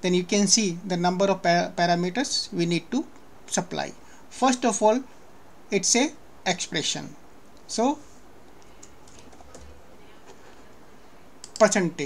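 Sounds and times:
keyboard keys clicking: 8.6 - 9.8, 11.4 - 11.7.

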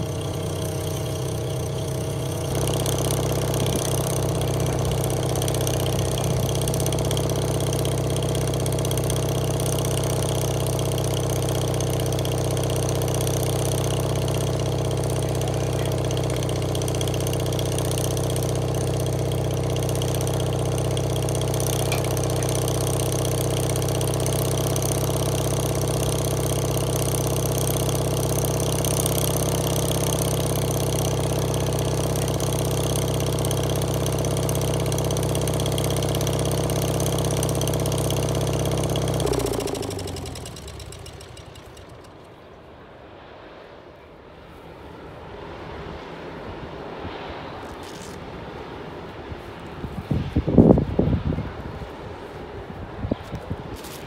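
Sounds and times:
sawmill engine running: 0.0 - 42.6.

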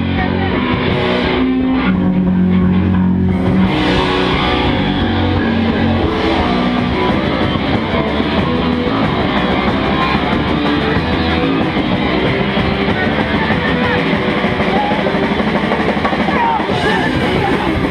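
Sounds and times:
distorted electric guitar: 0.0 - 17.9
drum kit: 0.0 - 17.9.

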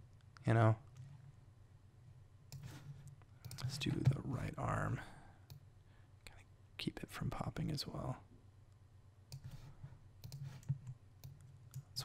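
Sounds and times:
computer mouse clicks: 2.5 - 4.2, 9.3 - 12.0.

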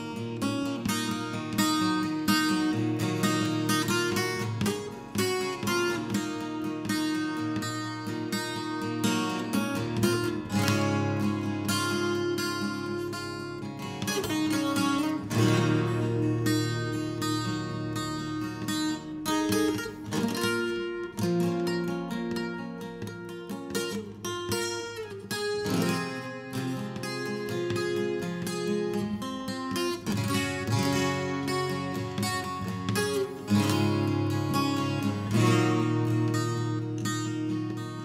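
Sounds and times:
acoustic guitar chords: 0.0 - 38.0.

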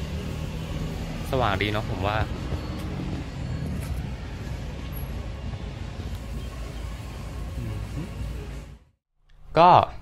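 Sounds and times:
man speaking: 9.5 - 10.0.

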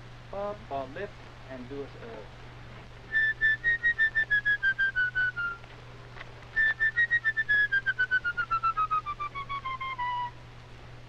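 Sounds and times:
solo flute playing detached notes: 3.1 - 5.6, 6.6 - 10.4.

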